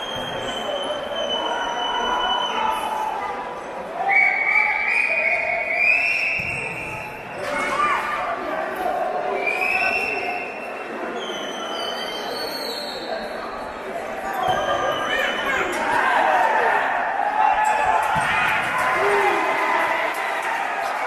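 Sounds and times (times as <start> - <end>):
spectators talking and calling out: 0.0 - 21.0.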